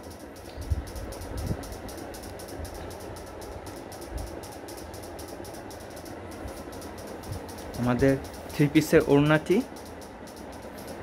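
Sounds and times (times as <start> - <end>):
mechanical hum with flutter: 0.0 - 11.0.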